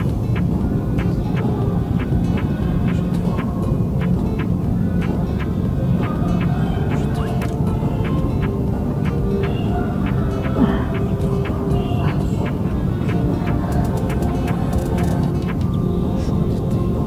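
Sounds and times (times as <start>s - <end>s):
background music with steady beat: 0.0s - 17.0s
low drone: 0.0s - 17.0s.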